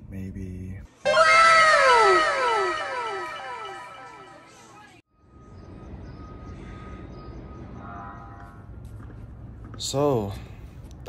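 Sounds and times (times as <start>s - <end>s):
faint held tone: 1.1s - 4.8s.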